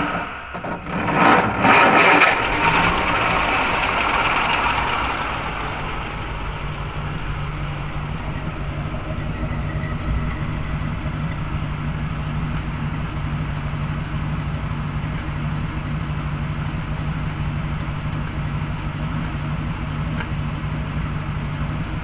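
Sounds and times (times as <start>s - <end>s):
car engine starting and idling: 0.0s - 22.0s.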